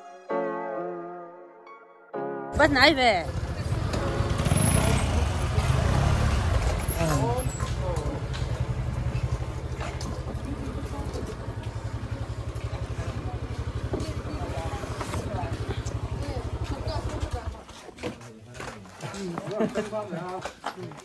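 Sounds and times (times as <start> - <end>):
motorcycle engine idling: 2.6 - 18.0.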